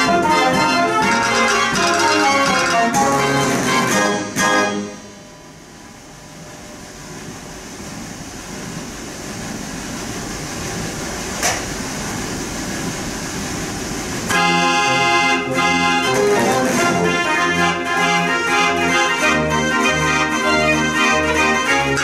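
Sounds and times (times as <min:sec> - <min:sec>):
dance organ music: 0:00.0 - 0:05.1, 0:14.3 - 0:22.0.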